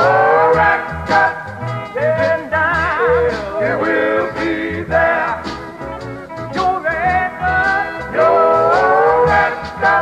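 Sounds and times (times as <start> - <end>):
male vocal group singing gospel: 0.0 - 5.8, 6.5 - 10.0
pulsing bass line: 0.0 - 10.0.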